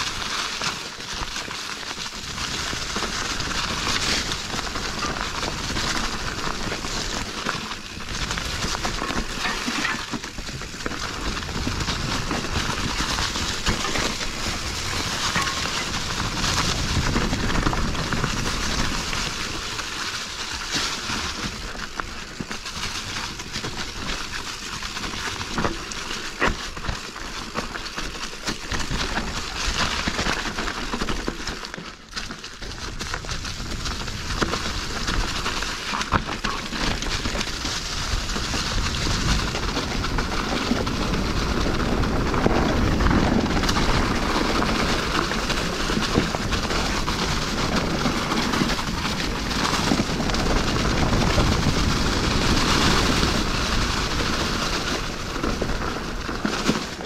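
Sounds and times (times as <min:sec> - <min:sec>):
bike rattling over bumps: 0:00.0 - 0:57.0
tyres rolling through dry leaves: 0:00.0 - 0:57.0
wind rushing over microphone: 0:11.2 - 0:19.7, 0:37.2 - 0:56.5.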